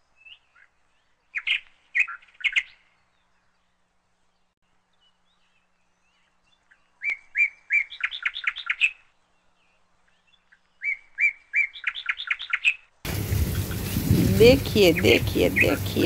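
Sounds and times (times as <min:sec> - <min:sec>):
small bird singing: 0:00.0 - 0:12.9.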